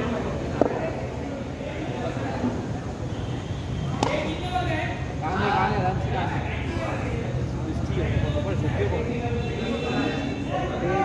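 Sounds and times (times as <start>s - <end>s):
men talking and calling out: 0.0s - 11.0s.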